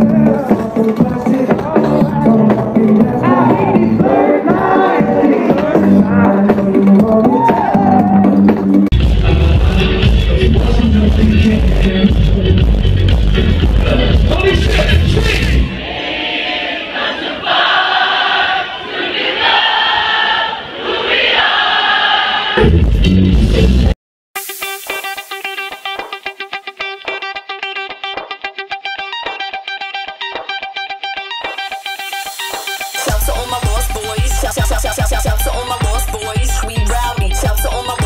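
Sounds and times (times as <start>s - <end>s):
singing: 0.0s - 11.8s, 32.9s - 38.0s
heavy bass beat: 0.0s - 15.7s, 22.6s - 23.9s, 32.4s - 38.0s
electronic dance music: 0.0s - 15.8s, 22.6s - 38.0s
rapid plucked notes: 24.4s - 38.0s.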